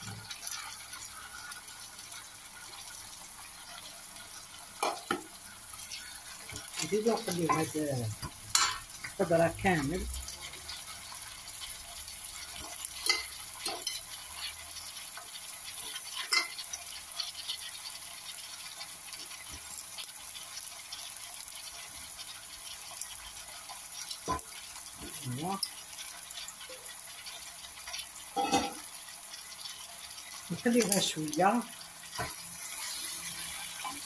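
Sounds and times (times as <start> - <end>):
vegetables sizzling in pot: 0.0 - 34.0.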